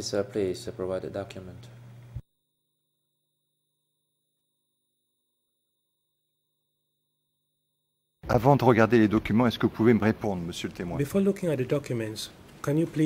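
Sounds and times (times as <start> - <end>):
voice: 0.0 - 1.7, 8.3 - 13.0
faint steady hum: 0.0 - 13.0.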